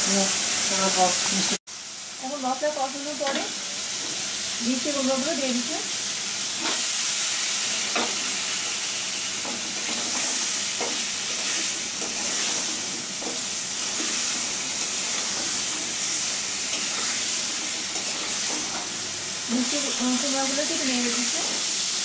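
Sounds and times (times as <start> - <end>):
food sizzling in hot oil: 0.0 - 22.0
metal spatula scraping pan: 9.4 - 19.0.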